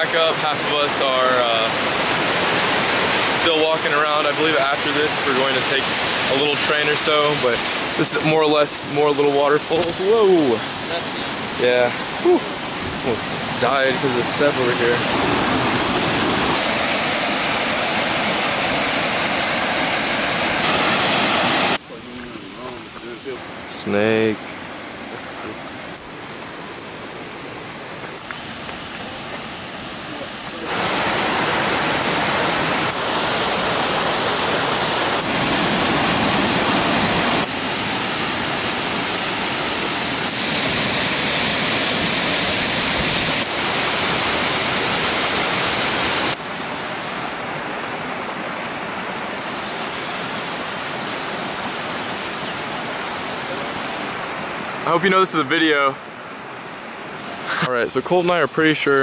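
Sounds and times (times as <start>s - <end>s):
waterfall rushing: 0.0s - 59.0s.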